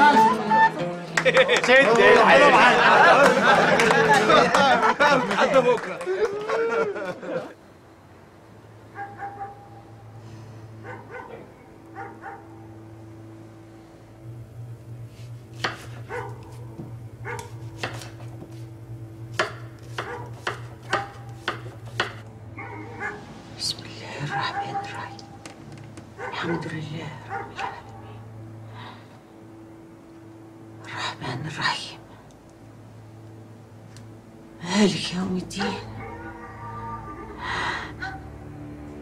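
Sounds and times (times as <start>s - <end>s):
steady low hum: 7.2s - 36.0s.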